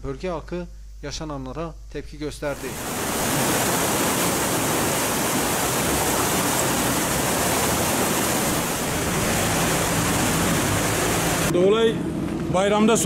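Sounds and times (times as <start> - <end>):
floodwater rushing: 2.6 - 11.5.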